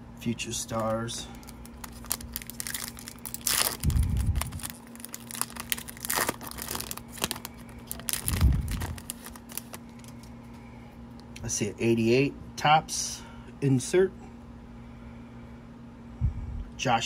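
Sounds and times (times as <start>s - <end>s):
foil wrapper tearing and crinkling: 0.7s - 10.3s.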